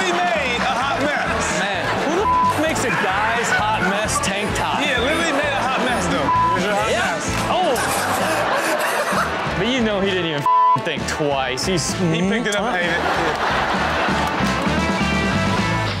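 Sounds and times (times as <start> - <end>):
background music with beat: 0.0 - 16.0
censor bleeps: 2.2 - 2.6, 6.2 - 6.6, 10.5 - 10.8.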